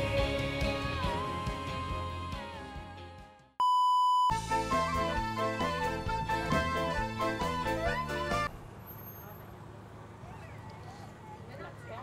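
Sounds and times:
music: 0:00.0 - 0:03.6, 0:04.3 - 0:08.5
electronic beep: 0:03.6 - 0:04.3
music track: 0:04.3 - 0:08.5.

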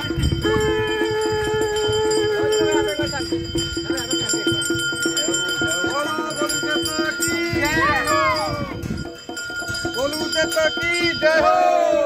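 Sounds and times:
bells ringing: 0:00.0 - 0:12.0
procession music with drums: 0:00.0 - 0:12.0.

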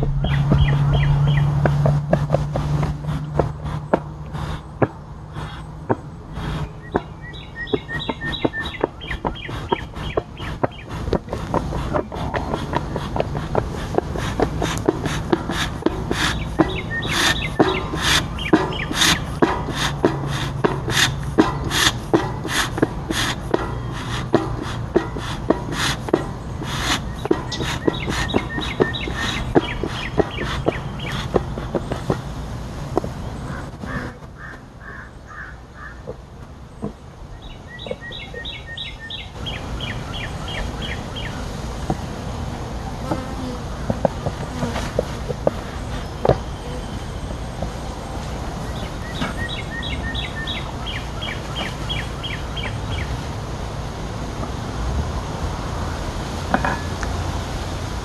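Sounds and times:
bird chirping: 0:00.0 - 0:32.2, 0:33.0 - 0:41.6, 0:44.0 - 0:53.1
bee smoker bellows puffing: 0:00.0 - 0:35.5, 0:36.2 - 0:52.7.

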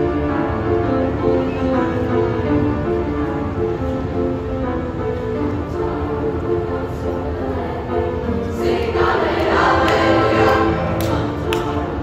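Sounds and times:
piano accompaniment: 0:00.0 - 0:12.0
chorus singing in parts: 0:06.1 - 0:12.0.

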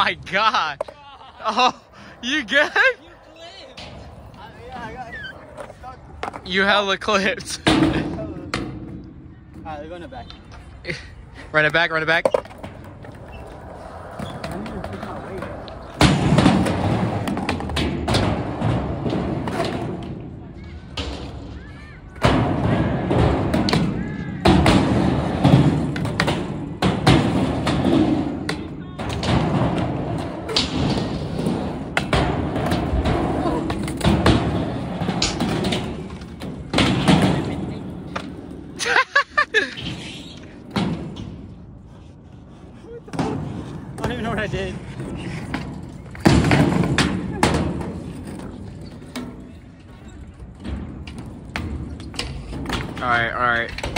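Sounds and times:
skateboard wheels rolling: 0:00.0 - 0:53.9
skateboard thudding on ramp: 0:12.2 - 0:38.7, 0:43.1 - 0:49.5.

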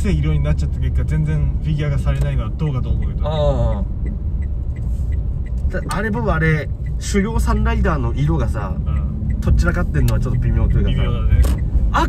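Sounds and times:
car road noise rumble: 0:00.0 - 0:12.0
turn indicator ticking: 0:00.0 - 0:12.0.

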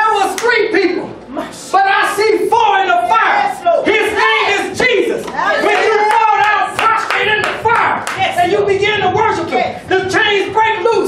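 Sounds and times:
excited voices shouting: 0:01.7 - 0:08.5
congregation clapping: 0:05.6 - 0:08.4.

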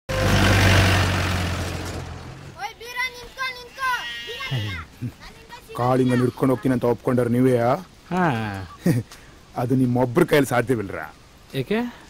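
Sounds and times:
jeep driving past: 0:00.1 - 0:02.6.

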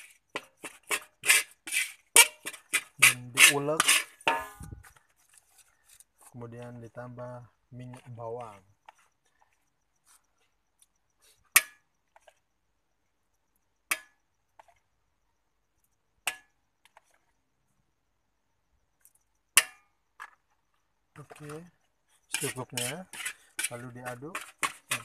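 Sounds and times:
metal utensils clinking on wok: 0:02.2 - 0:04.8, 0:22.3 - 0:25.0.

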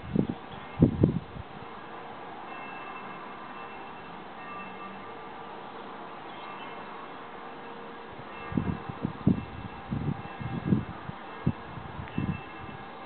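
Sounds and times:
distant church bells ringing: 0:00.5 - 0:00.9, 0:01.8 - 0:13.0.

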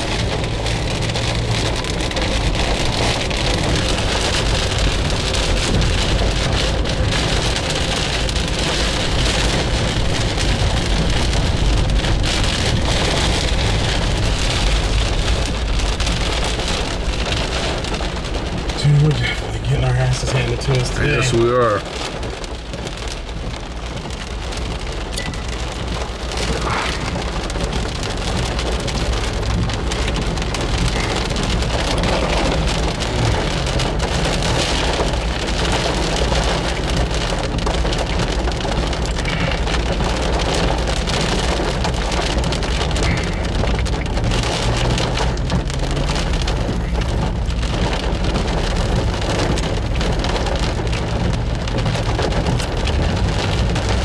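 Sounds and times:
heavy rain on car roof: 0:00.0 - 0:54.0.

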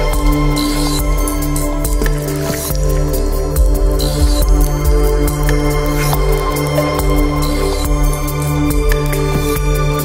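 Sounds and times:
ambient synthesizer music: 0:00.0 - 0:10.0.

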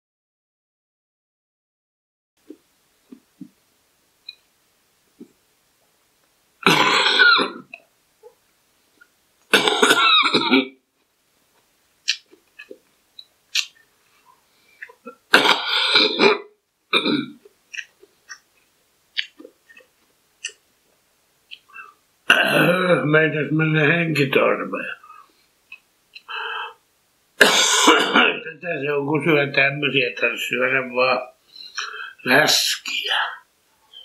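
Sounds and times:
man coughing: 0:06.6 - 0:07.6, 0:09.5 - 0:10.7, 0:27.4 - 0:28.4
man burping loudly: 0:06.6 - 0:07.8, 0:09.5 - 0:10.8, 0:15.0 - 0:17.4, 0:22.3 - 0:23.0, 0:27.4 - 0:28.4.

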